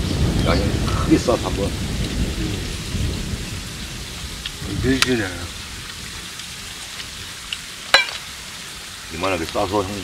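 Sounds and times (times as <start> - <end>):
steady outdoor background hiss: 0.0 - 10.0.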